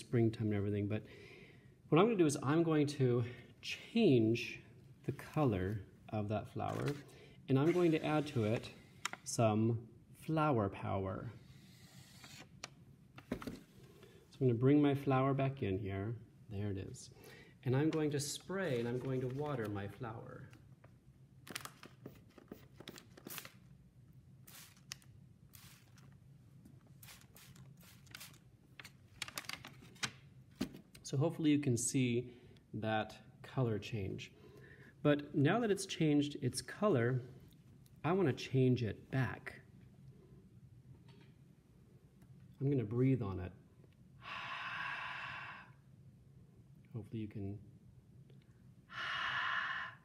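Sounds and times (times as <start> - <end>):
low room hum: 0.0 - 50.0
spray bottle hissing sprays: 24.5 - 25.0, 25.6 - 26.1, 26.9 - 28.4
person breathing out: 44.2 - 45.8, 48.9 - 50.0.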